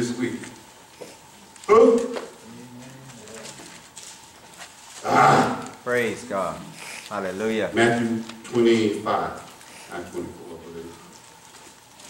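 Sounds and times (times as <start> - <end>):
person humming: 1.7 - 3.7.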